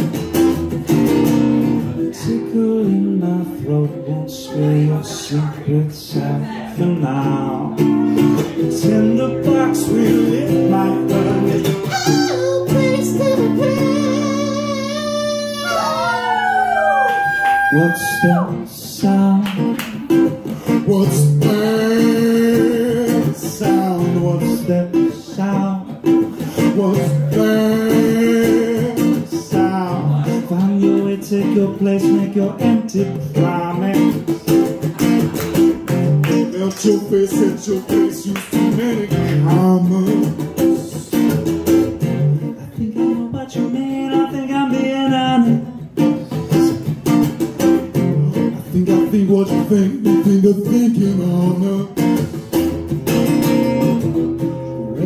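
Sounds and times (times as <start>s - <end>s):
acoustic guitar strumming: 0.0s - 16.8s, 17.6s - 55.0s
person singing: 1.8s - 52.6s.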